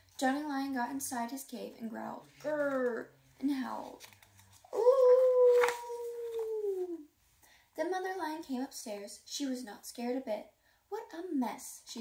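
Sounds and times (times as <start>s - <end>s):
woman imitating a howl: 4.8s - 7.1s.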